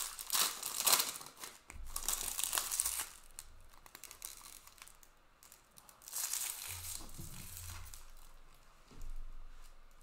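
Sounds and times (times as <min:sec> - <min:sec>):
foil wrappers crinkling: 0:00.0 - 0:08.4.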